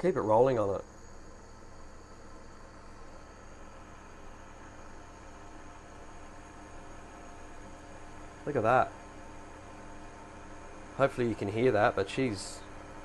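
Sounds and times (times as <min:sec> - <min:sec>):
induction cooker humming: 0:00.0 - 0:13.0.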